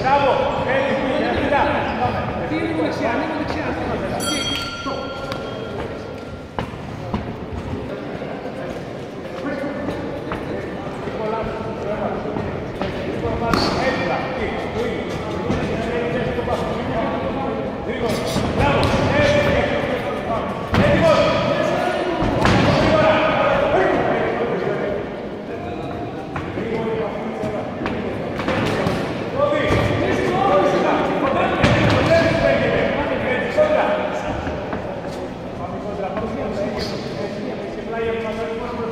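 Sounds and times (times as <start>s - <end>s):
voices calling out in a hall: 0.0s - 38.9s.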